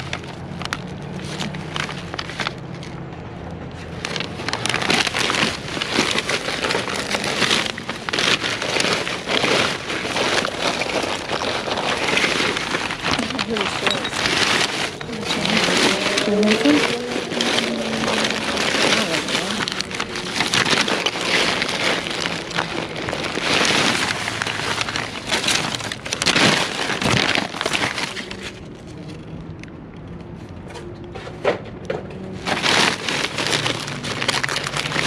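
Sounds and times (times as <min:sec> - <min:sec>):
plastic trash bags crinkling: 0:00.0 - 0:03.1, 0:03.7 - 0:29.3, 0:32.3 - 0:35.0.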